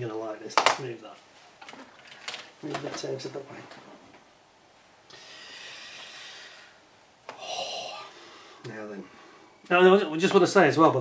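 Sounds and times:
man breathing out through nose: 5.1s - 6.8s.

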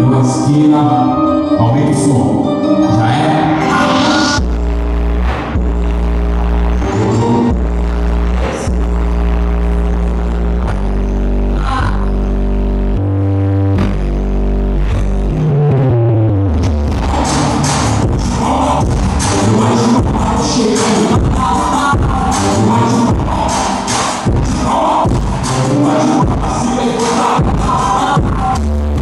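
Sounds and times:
deep bass notes from stereo: 0.0s - 29.0s.

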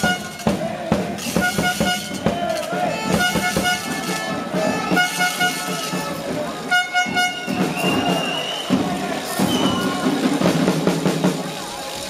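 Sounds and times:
horn short toots: 0.0s - 0.5s, 1.2s - 10.1s
crowd shouting: 0.0s - 12.0s
high steady whistle tone: 7.4s - 10.0s.

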